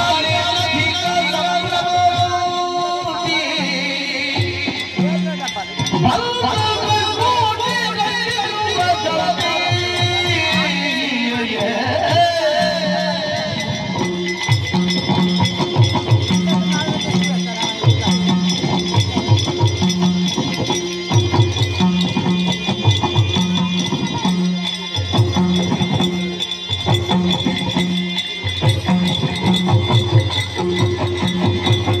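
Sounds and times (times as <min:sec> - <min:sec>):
drums: 0:00.0 - 0:32.0
small hand cymbals: 0:00.0 - 0:32.0
wavering vocal melody: 0:00.0 - 0:32.0.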